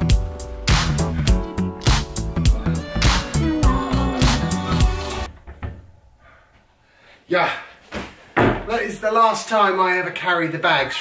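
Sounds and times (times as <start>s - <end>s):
background music: 0.0s - 5.3s.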